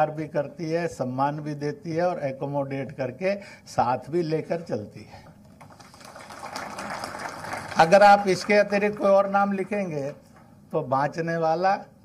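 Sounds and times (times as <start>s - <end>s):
audience applause in a hall: 5.6s - 9.8s.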